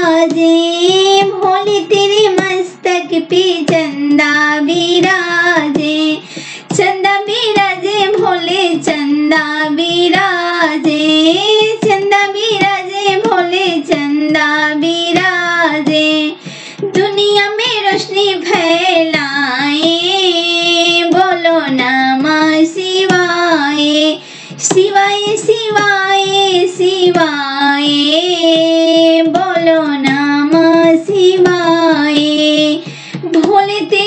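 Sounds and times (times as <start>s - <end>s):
woman singing folk song: 0.0s - 34.0s.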